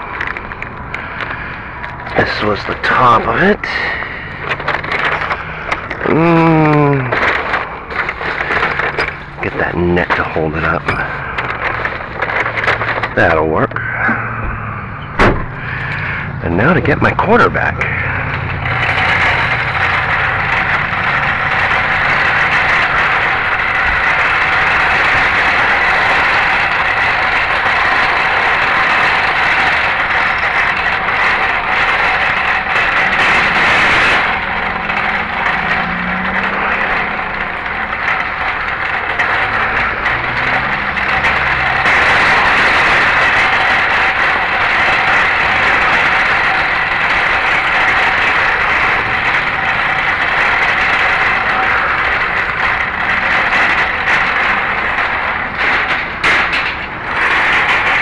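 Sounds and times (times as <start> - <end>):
shopping cart rattling on asphalt: 0.0 - 58.0.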